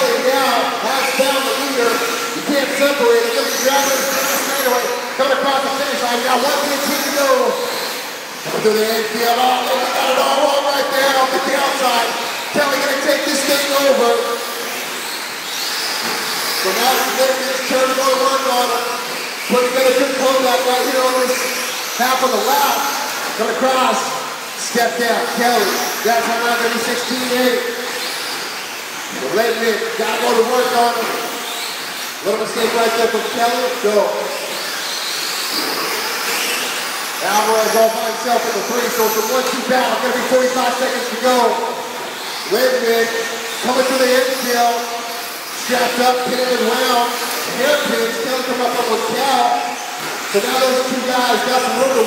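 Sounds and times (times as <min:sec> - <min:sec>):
electric motors whining: 0:00.0 - 0:52.0
rc trucks running on dirt: 0:00.0 - 0:52.0.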